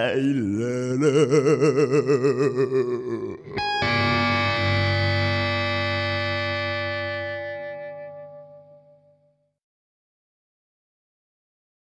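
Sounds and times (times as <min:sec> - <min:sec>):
electric guitar chord ringing: 0:03.6 - 0:09.3.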